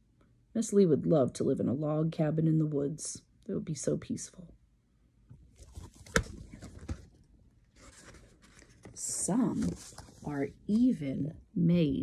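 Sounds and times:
book pages turning: 5.5 - 10.9.

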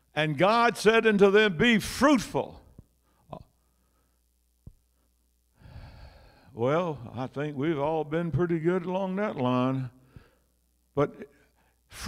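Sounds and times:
man sighing breath: 5.6 - 6.5.

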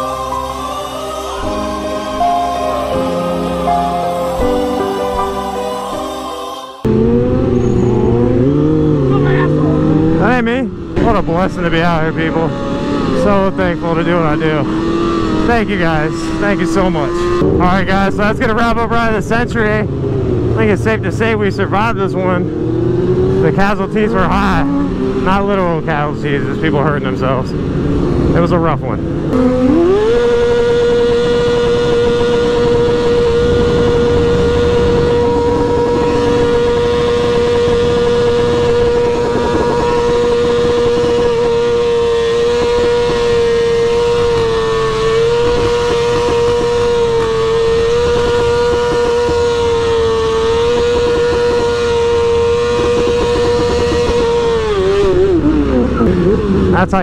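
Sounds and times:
motorcycle engine revving high: 0.0 - 57.0.

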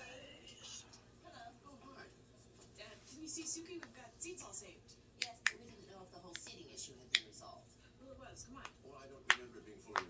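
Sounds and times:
faint television dialogue: 0.0 - 10.0
knuckles cracking: 8.6 - 10.0.

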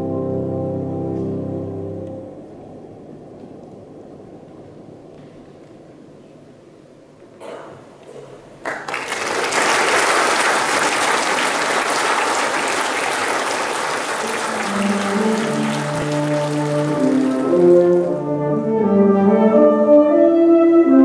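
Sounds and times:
brass band chords: 0.0 - 2.3, 13.8 - 21.0
loud rush of noise: 9.8 - 18.3.

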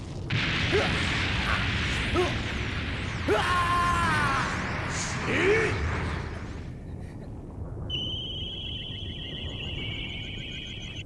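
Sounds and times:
low rumble: 0.0 - 11.0
sudden blast: 0.2 - 10.1
high-pitched electronic tone: 8.0 - 11.0.

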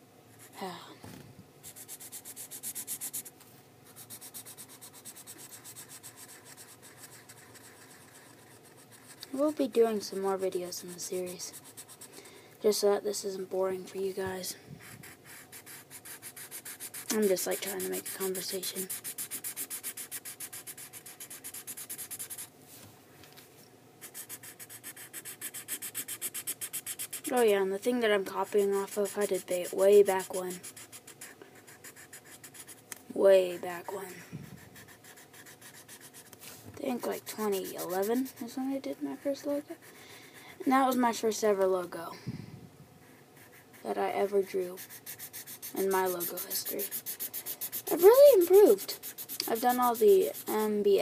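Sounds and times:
marker scribbling on paper: 1.6 - 3.3, 3.9 - 12.1, 14.0 - 22.5, 24.0 - 40.0, 43.1 - 51.0.

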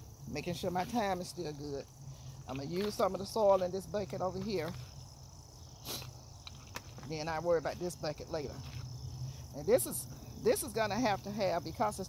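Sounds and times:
insects chirping: 0.0 - 12.0
potting soil rustling: 0.0 - 12.0.

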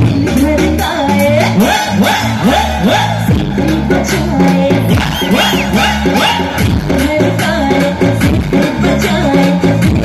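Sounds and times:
loud live pop music: 0.0 - 10.0
crowd cheering and whooping: 5.0 - 6.7.

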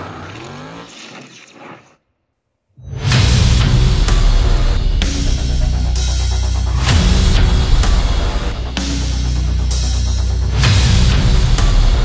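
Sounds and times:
motorcycle engine revving: 0.0 - 1.8.

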